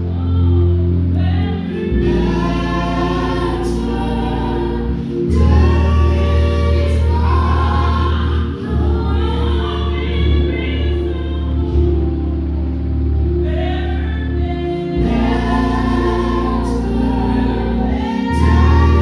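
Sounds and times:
gospel choir singing: 0.0 - 19.0
held bass notes: 0.0 - 19.0.

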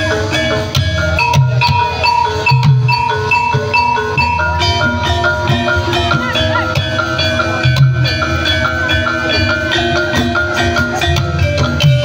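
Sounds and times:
drum stroke: 0.0 - 12.0
metallophones struck in a pattern: 0.0 - 12.0.

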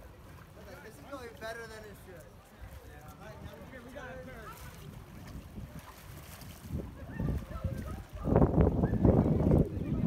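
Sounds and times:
wind rumbling on microphone: 2.6 - 10.0.

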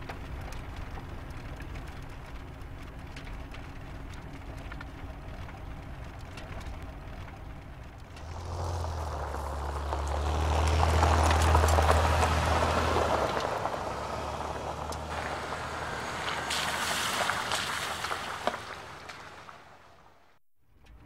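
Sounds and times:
van engine humming: 0.0 - 20.3
tyres crunching over gravel: 8.1 - 20.0.

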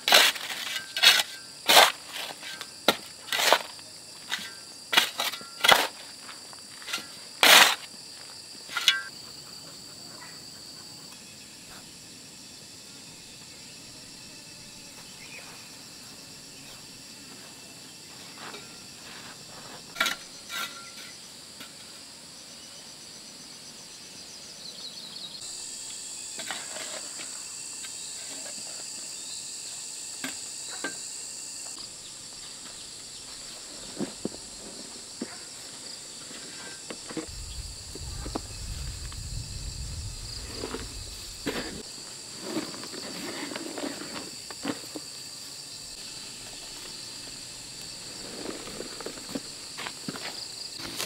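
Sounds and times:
insects chirring: 0.0 - 51.0
hoe blade striking stony soil: 6.8 - 7.9.

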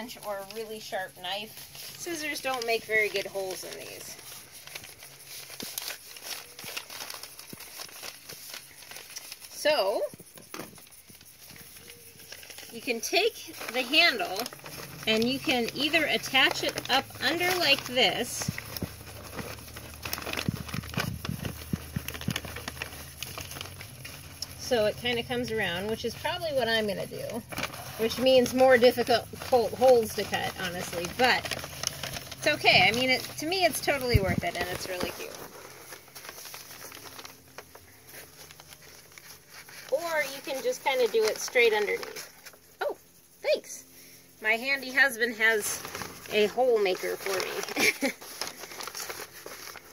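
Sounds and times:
paper bag rustling: 0.0 - 49.9.

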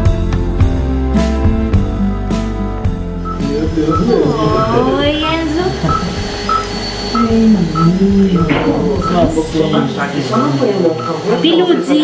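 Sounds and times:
patient monitor beeping: 3.2 - 12.0
low voices: 3.3 - 12.0.

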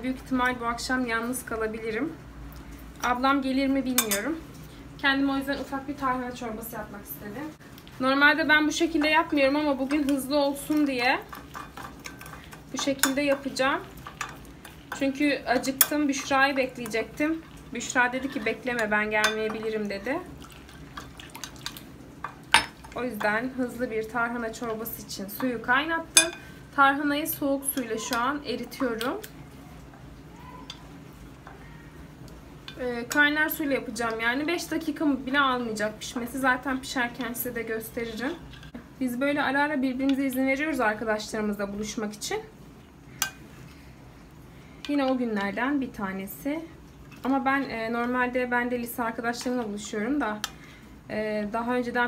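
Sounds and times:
metal spoon clinking in bowl: 4.0 - 4.3, 18.7 - 19.7, 26.2 - 26.5
water pouring: 19.9 - 21.8.

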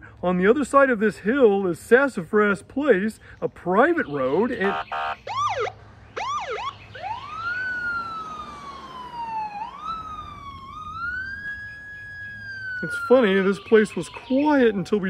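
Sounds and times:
police siren whooping and wailing: 4.1 - 15.0.

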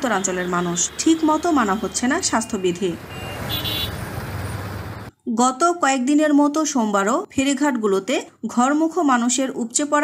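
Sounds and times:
highway traffic rumble: 0.0 - 5.1.

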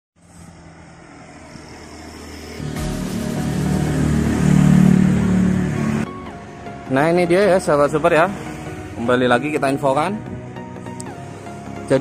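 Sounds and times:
vehicle engine approaching: 0.2 - 12.0.

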